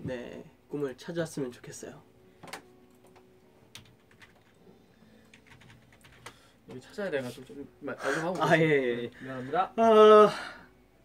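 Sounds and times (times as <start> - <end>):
computer keyboard keystrokes: 2.5 - 4.6, 5.3 - 6.4.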